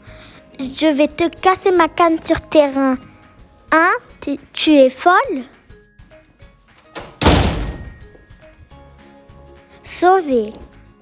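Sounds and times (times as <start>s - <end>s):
soft background music: 0.0s - 11.0s
loud thunk: 7.0s - 8.0s.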